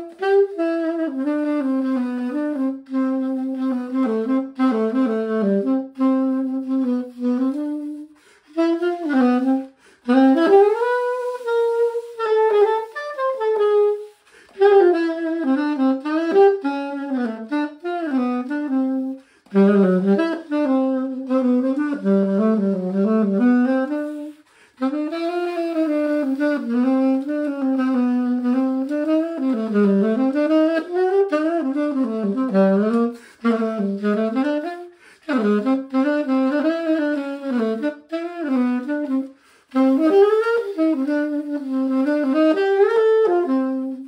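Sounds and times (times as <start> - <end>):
solo alto saxophone melody: 0.0 - 44.0
player breathing: 8.1 - 8.5, 9.7 - 10.1, 14.1 - 14.6, 24.3 - 24.8, 33.1 - 33.4, 34.9 - 35.3, 39.3 - 39.7.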